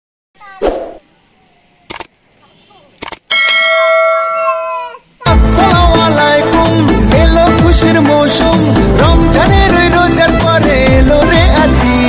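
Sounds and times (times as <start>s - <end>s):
sharp clicks: 1.9s - 2.2s, 3.0s - 3.3s
ringing chime-like chord: 3.3s - 4.1s
loud music: 5.3s - 12.0s.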